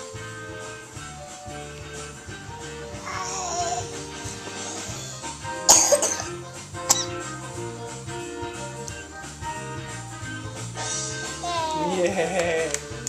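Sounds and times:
background music: 0:00.0 - 0:13.0
person coughing: 0:05.7 - 0:07.1.

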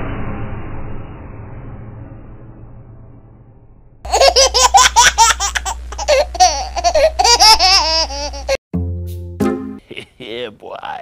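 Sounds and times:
high-pitched laughter: 0:04.1 - 0:08.6.

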